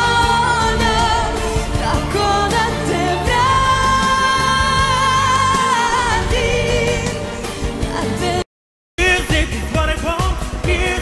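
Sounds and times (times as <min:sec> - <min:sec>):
band backing: 0:00.0 - 0:08.4, 0:09.0 - 0:11.0
woman singing a ballad: 0:00.0 - 0:08.4.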